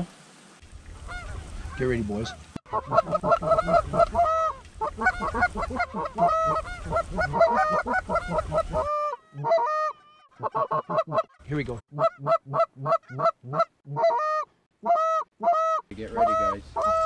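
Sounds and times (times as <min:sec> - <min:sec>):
goose honks and clucks: 0:01.0 - 0:17.0.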